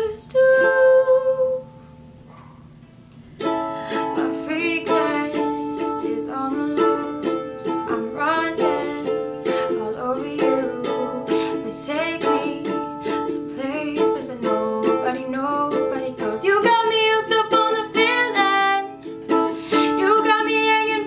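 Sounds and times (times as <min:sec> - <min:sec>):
woman singing: 0:00.0 - 0:01.8, 0:03.9 - 0:21.0
ukulele strumming: 0:03.2 - 0:21.0.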